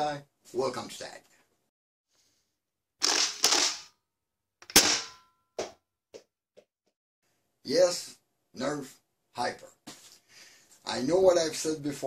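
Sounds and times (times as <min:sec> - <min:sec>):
gunshot sound effects: 0:04.7 - 0:05.2.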